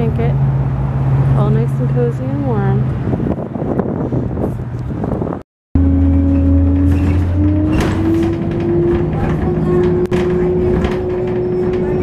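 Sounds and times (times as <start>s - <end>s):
wind buffeting microphone: 0.0s - 5.4s, 6.3s - 12.0s
bus engine hum: 0.0s - 12.0s.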